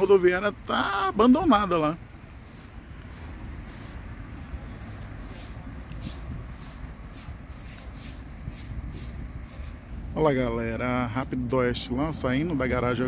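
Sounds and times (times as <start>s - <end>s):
distant road traffic: 0.0s - 13.0s.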